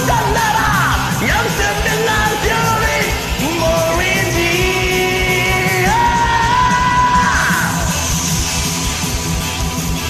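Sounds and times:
power metal backing track: 0:00.0 - 0:10.0.

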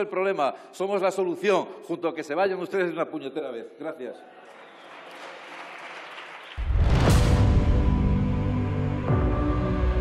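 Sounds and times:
applause: 0:04.3 - 0:07.1
whoosh: 0:06.6 - 0:08.8
outro music with deep bass: 0:06.7 - 0:10.0.

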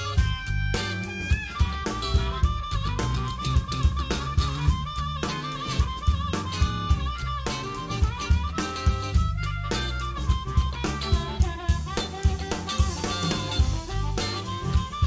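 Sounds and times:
bass: 0:00.0 - 0:15.0
drum kit: 0:00.0 - 0:15.0
harmonica playing bent notes: 0:00.0 - 0:15.0.

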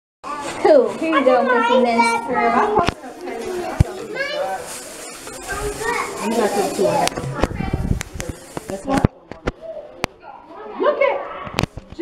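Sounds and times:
young children's voices: 0:05.3 - 0:08.0.

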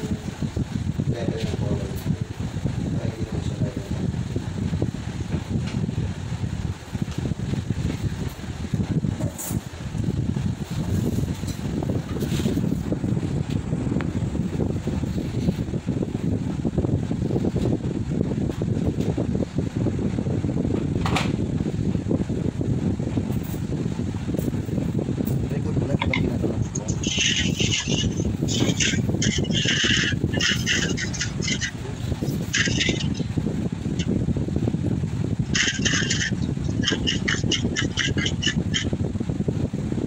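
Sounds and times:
fan humming: 0:00.0 - 0:40.0.

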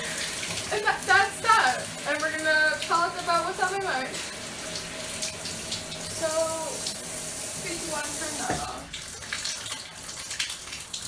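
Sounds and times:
water dripping in shower: 0:00.0 - 0:11.0.

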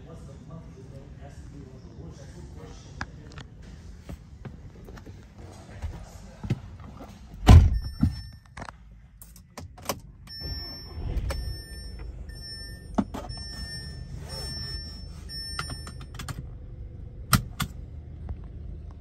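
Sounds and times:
dashboard warning chimes: 0:07.7 - 0:08.6, 0:10.2 - 0:16.4
car engine starting and idling: 0:09.2 - 0:19.0.

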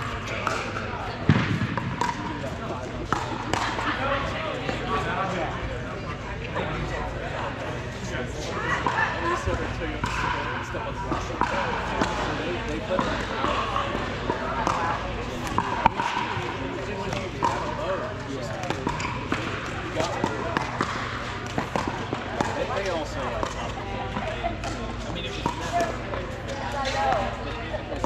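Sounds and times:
babble of voices: 0:00.0 - 0:28.0
paddles hitting plastic ball: 0:00.4 - 0:02.3, 0:18.4 - 0:24.8.

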